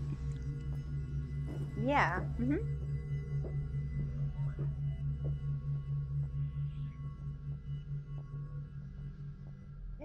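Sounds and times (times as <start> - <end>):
low throbbing synth drone: 0.0 - 10.0.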